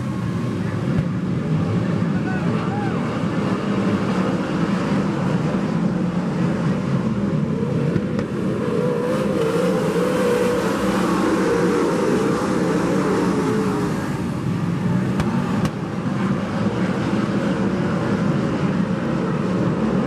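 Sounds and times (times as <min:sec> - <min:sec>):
racing car engines droning: 0:00.0 - 0:20.0.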